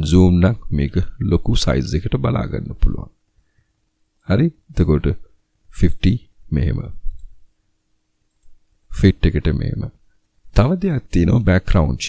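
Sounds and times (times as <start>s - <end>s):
person speaking: 0.0s - 3.2s, 4.2s - 7.4s, 8.9s - 12.0s.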